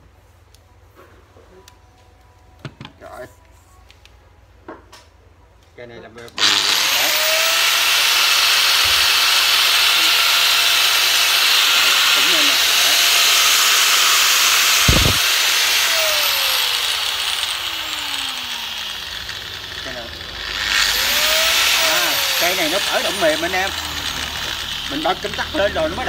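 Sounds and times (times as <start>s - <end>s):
angle grinder whining: 6.4s - 26.0s.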